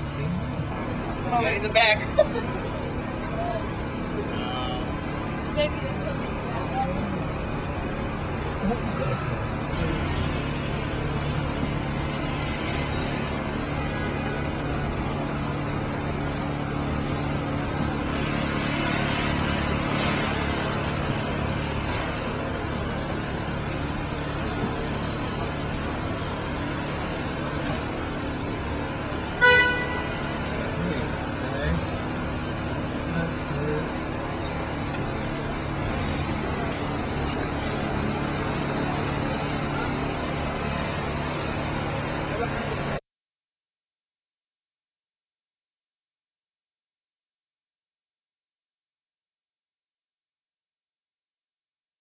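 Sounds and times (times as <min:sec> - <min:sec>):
city street traffic: 0:00.0 - 0:43.0
car horn toot: 0:29.4 - 0:30.4.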